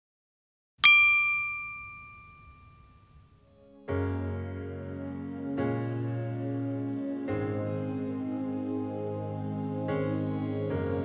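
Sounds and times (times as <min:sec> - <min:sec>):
bell-like ding: 0:00.8 - 0:03.5.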